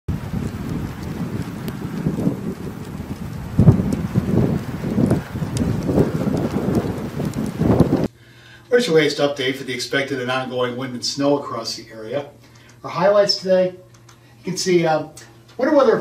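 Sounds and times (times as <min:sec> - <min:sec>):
storm wind gusting: 0:00.1 - 0:08.1.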